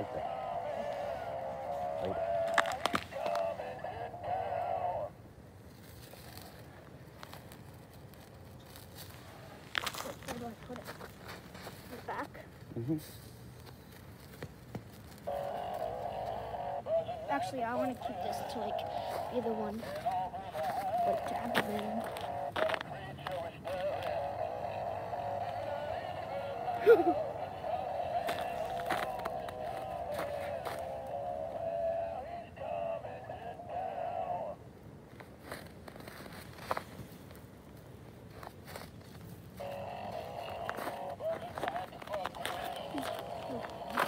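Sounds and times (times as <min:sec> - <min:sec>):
toy song through small speaker: 0:00.0 - 0:05.2, 0:15.3 - 0:34.6, 0:39.6 - 0:44.0
fire crackling: 0:00.0 - 0:44.0
steady droning electronic tone: 0:39.6 - 0:44.0.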